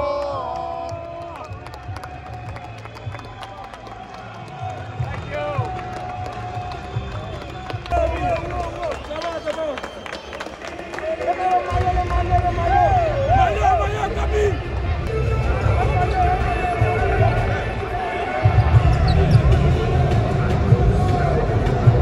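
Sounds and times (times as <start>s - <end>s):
people shouting and chanting: 0.0s - 1.4s, 11.1s - 22.0s
hand-clapping: 0.0s - 13.4s
music with low beat: 14.8s - 22.0s.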